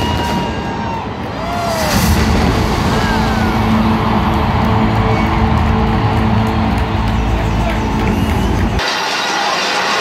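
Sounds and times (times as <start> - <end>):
crowd cheering: 0.0 - 10.0
loud concert music: 1.4 - 10.0.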